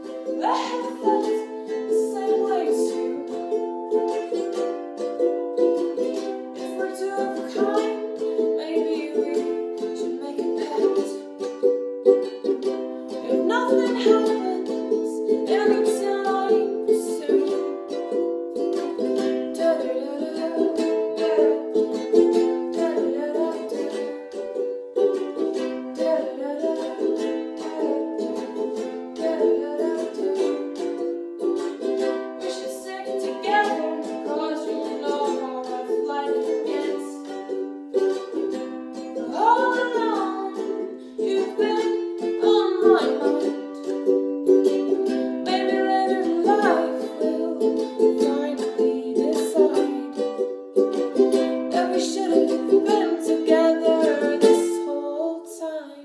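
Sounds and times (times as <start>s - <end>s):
woman singing: 0.0s - 11.5s, 13.1s - 56.0s
ukulele strumming: 0.0s - 56.0s.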